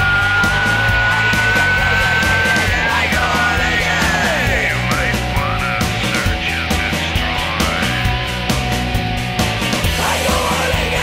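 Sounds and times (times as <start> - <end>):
rock song: 0.0 - 11.0
high held note: 0.2 - 3.8.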